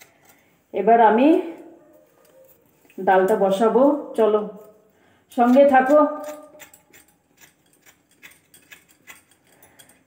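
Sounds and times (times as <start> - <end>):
person speaking: 2.9 - 4.7, 5.4 - 6.4.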